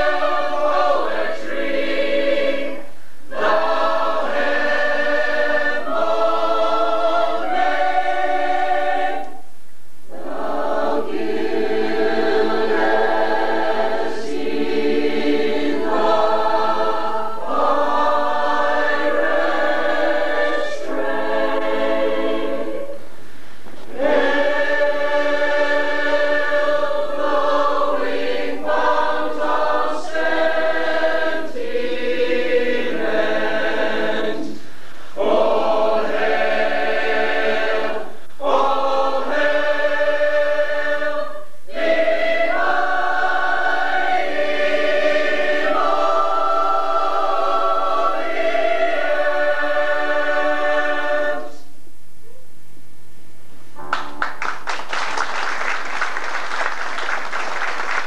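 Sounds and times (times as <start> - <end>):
mixed chorus singing: 0.0 - 9.4, 10.1 - 51.7.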